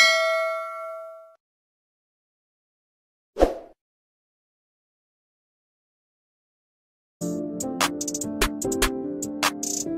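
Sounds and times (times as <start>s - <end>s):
bell chime: 0.0s - 1.4s.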